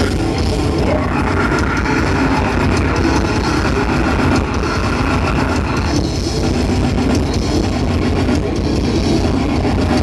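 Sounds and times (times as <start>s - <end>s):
distorted guitar and bass: 0.0s - 10.0s
fast drumming: 0.0s - 10.0s.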